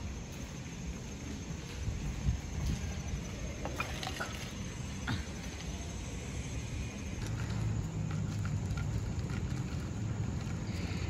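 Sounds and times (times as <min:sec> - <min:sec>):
wind buffeting microphone: 0:00.0 - 0:04.8
faint outdoor ambience: 0:00.0 - 0:11.0.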